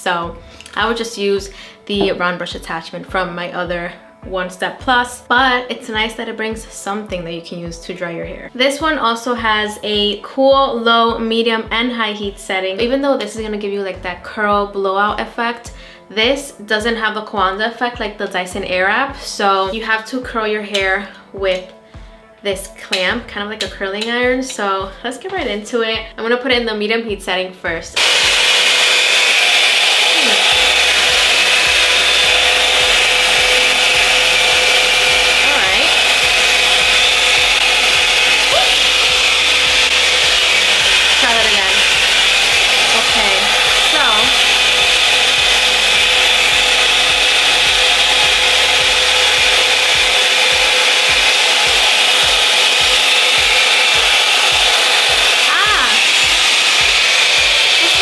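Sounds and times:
hot-air curling wand blowing: 28.0s - 58.0s.

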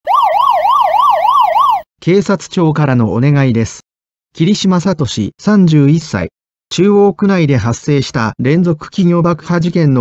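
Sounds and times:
siren sweeping up and down: 0.0s - 1.8s.

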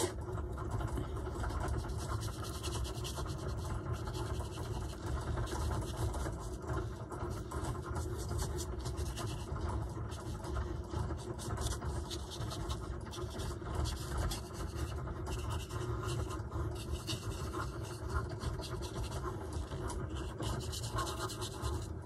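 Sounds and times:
low background hum: 0.0s - 22.0s
paintbrush scratching on paper: 0.8s - 22.0s.

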